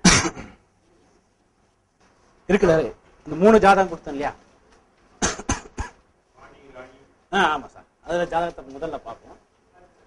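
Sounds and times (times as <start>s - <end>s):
man talking: 6.4s - 10.0s.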